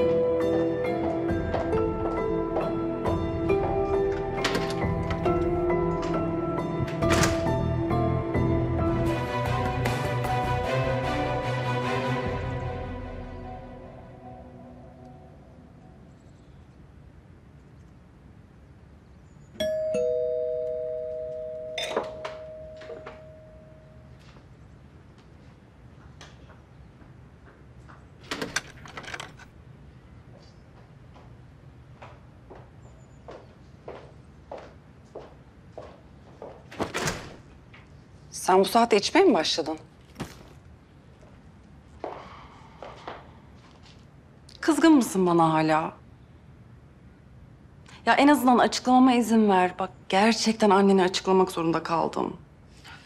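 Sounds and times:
two-tone doorbell chime: 0:19.6 - 0:24.1.

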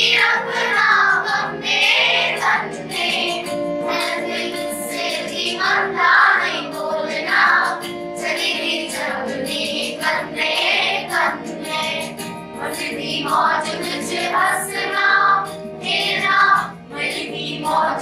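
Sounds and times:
girls singing in chorus: 0:00.0 - 0:18.0.

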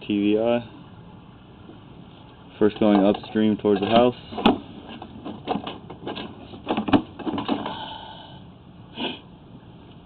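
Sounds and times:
cable clicks knocks and scrapes: 0:02.7 - 0:07.7.

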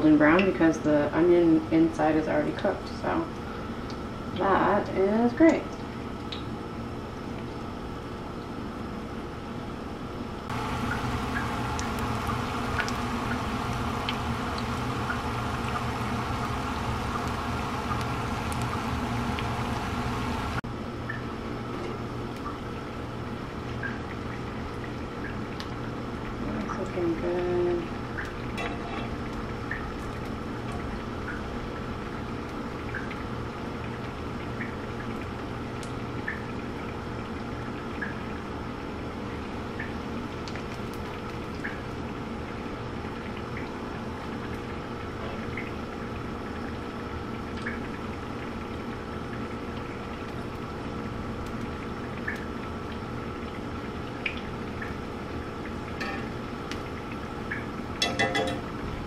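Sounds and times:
onion rings frying in hot oil: 0:10.4 - 0:20.6, 0:21.6 - 0:59.0
oil popping and crackling: 0:10.5 - 0:20.6.

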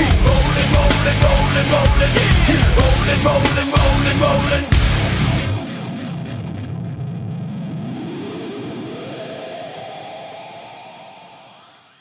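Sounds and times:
distorted electric guitar note: 0:00.0 - 0:08.0.

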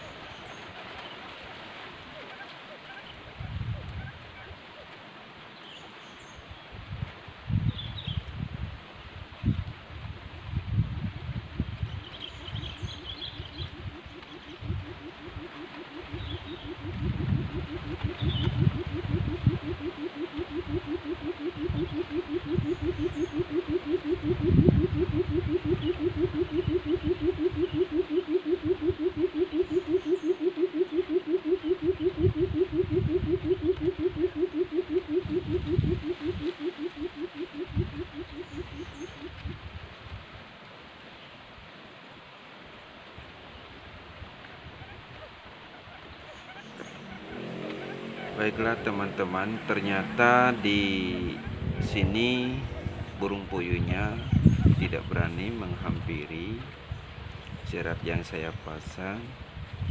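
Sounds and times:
bird hooting pulses: 0:11.8 - 0:39.9, 0:44.4 - 0:59.8
low rumbles: 0:12.6 - 0:30.3, 0:46.6 - 0:59.9.

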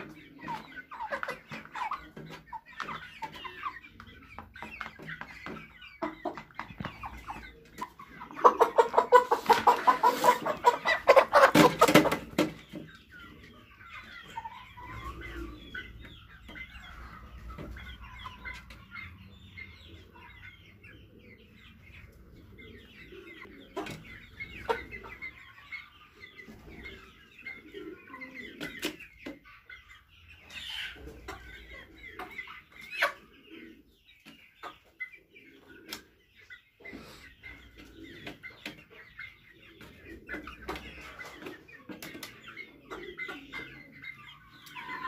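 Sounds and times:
chickens clucking: 0:00.0 - 0:45.0.

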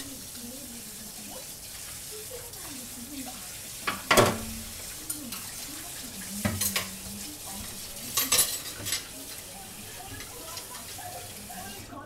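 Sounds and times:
dishes and cutlery clattering: 0:03.8 - 0:11.8.

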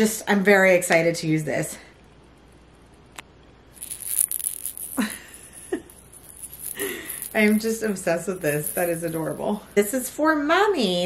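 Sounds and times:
baby teether rattling: 0:03.8 - 0:09.5.

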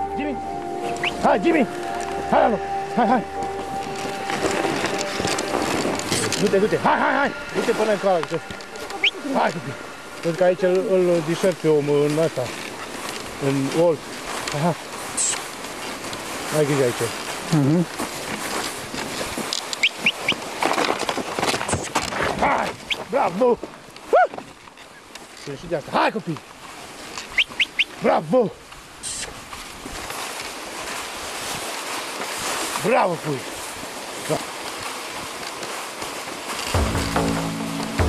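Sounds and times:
crunches in snow: 0:00.0 - 0:38.0
sled runners rushing through snow: 0:00.0 - 0:38.0
short rising squeaks: 0:08.3 - 0:10.3.

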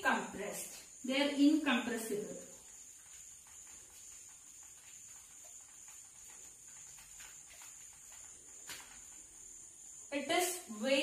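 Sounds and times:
chalk scratching on blackboard: 0:02.2 - 0:09.2.

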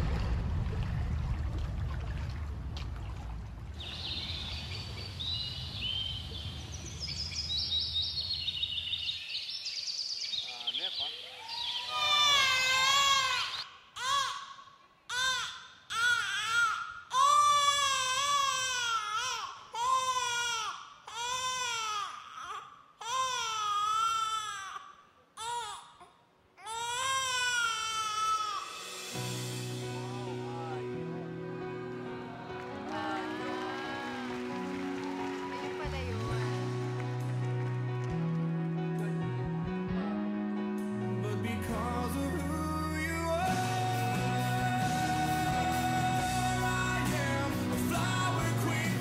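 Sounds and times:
low rumble: 0:00.0 - 0:08.4
infant crying: 0:11.5 - 0:28.8.

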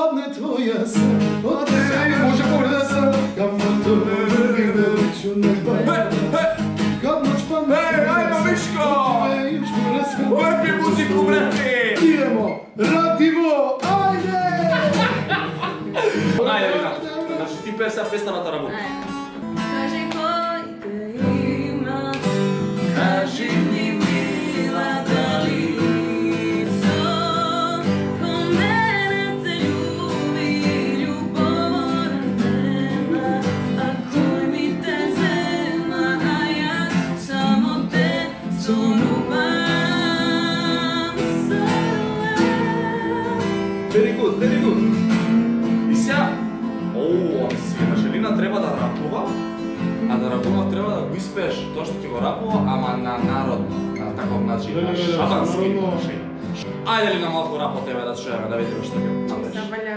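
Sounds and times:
acoustic guitar strumming: 0:00.9 - 0:59.9
person singing: 0:01.4 - 0:13.2, 0:13.8 - 0:17.7, 0:18.7 - 0:48.2, 0:49.9 - 0:50.7.

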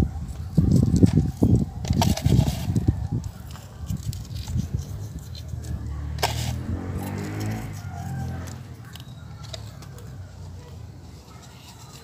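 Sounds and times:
vehicle engine running: 0:05.1 - 0:11.0.

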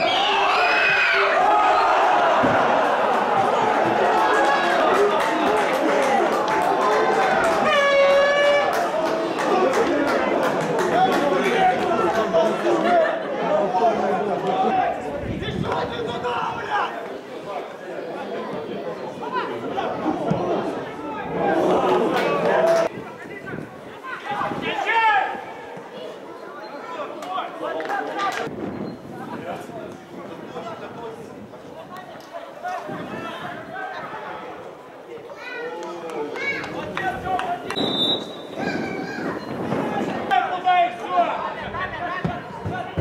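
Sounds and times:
players shouting: 0:00.0 - 0:22.9.

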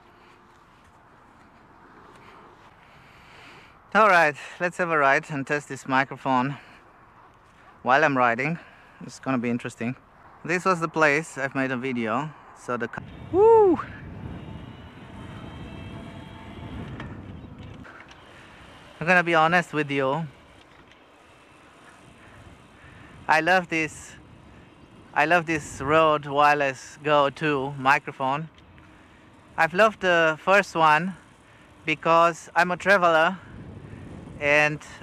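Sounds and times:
bicycle rolling noise: 0:00.0 - 0:04.6, 0:13.0 - 0:35.0
rushing wind: 0:00.0 - 0:35.0.

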